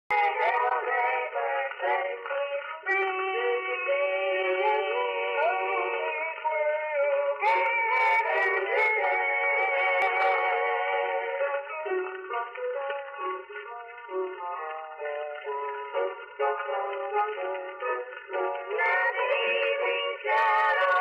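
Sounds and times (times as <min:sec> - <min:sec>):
boys singing in close harmony: 0:00.2 - 0:11.9, 0:18.4 - 0:21.0.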